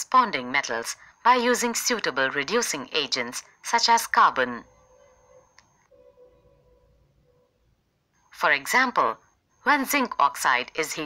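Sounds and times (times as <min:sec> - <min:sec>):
faint steady tones: 0:00.0 - 0:11.0.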